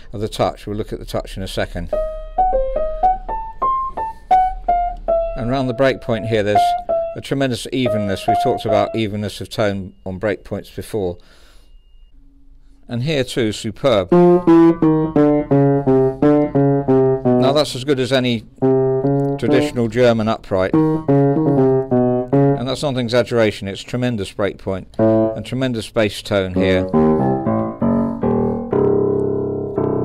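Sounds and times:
upright piano single notes: 1.9 - 9.2, 14.1 - 20.0, 20.7 - 22.7, 25.0 - 25.5, 26.6 - 30.0.

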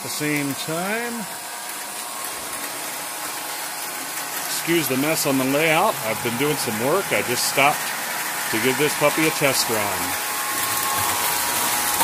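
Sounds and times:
toy train running on track: 0.0 - 12.0.

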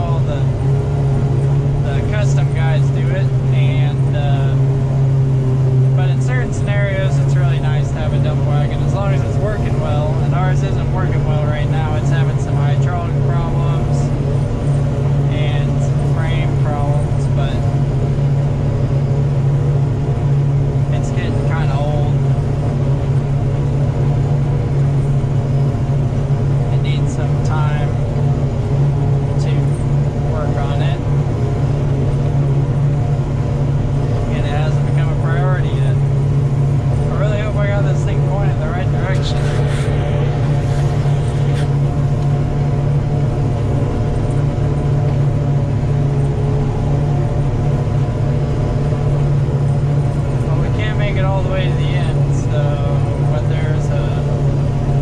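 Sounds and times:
forage harvester engine drone: 0.0 - 55.0
person speaking: 37.0 - 42.2.

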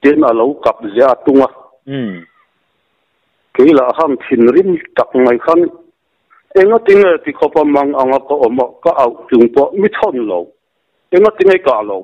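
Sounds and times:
man speaking: 0.0 - 2.4, 3.5 - 12.0.

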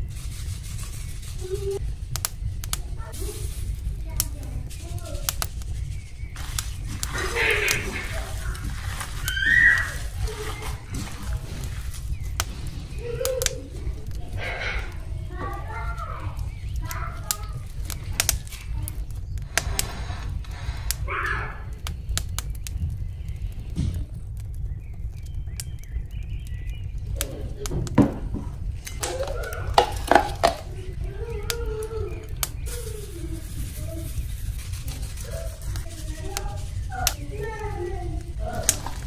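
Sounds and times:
steady low hum: 0.0 - 39.0
hand kneading raw meat: 4.1 - 12.5, 28.6 - 39.0.

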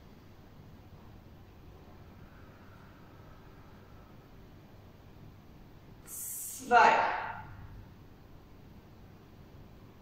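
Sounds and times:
woman speaking with reverberation: 6.1 - 7.6.

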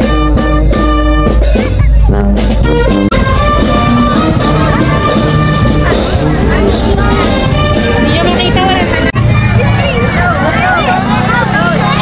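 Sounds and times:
voices calling out: 0.0 - 12.0.

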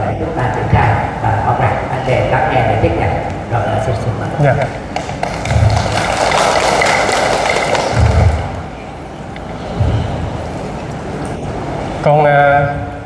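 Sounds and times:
audience applauding: 5.0 - 8.7
dull low thumps: 9.7 - 10.4.

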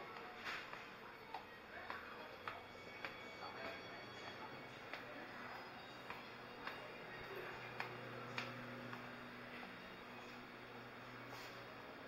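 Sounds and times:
footsteps on tiled floor: 0.0 - 12.0.

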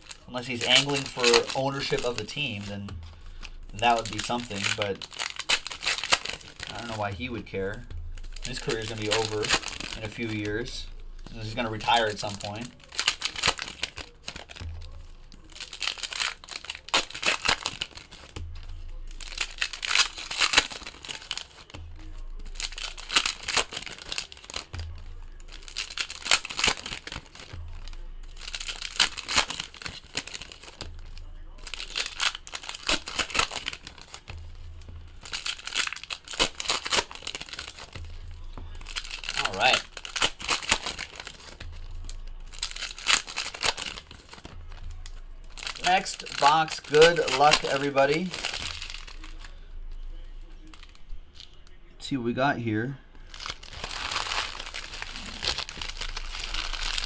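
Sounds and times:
plastic wrappers crinkling and tearing: 0.0 - 51.8, 53.1 - 57.0.

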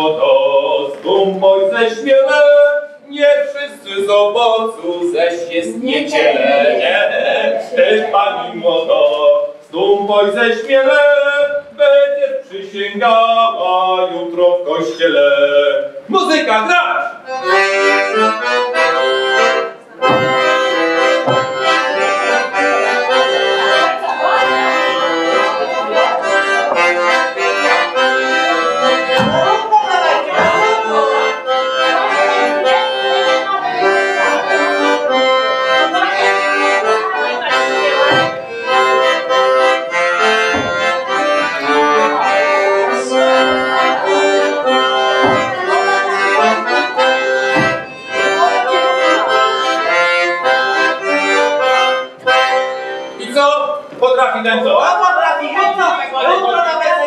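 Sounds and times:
accordion playing folk dance tune: 0.0 - 57.0.

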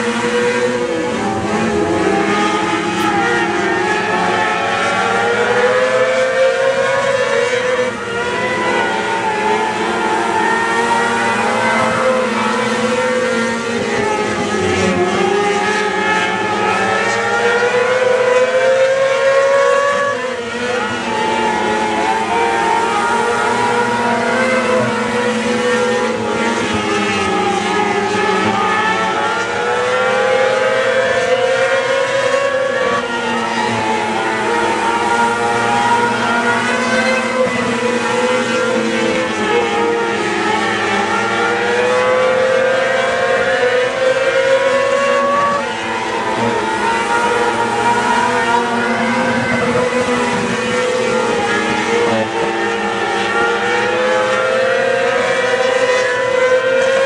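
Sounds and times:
racing car engines revving: 0.0 - 57.0.

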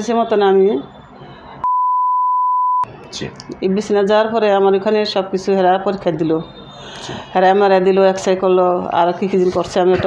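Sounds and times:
high-pitched censor bleep: 1.6 - 2.9.

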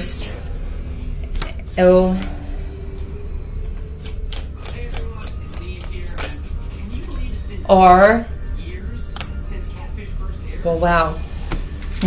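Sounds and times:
steady low hum: 0.0 - 12.0
cards being shuffled: 3.7 - 7.4.

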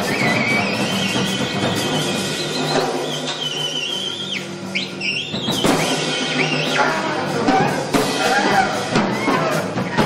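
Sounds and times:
drum kit playing: 0.0 - 10.0.

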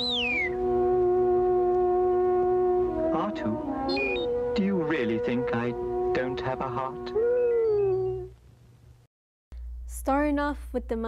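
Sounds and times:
robot electronic whistle: 0.0 - 0.6, 3.9 - 4.4.

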